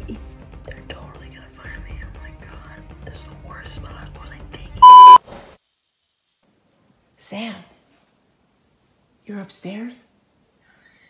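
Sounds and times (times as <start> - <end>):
faint background music: 0.0 - 4.8
loud electronic beep: 4.8 - 5.2.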